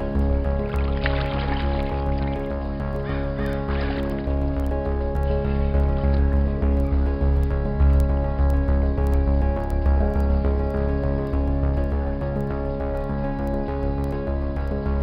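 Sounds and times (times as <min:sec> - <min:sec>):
background music with bass beat: 0:00.0 - 0:15.0.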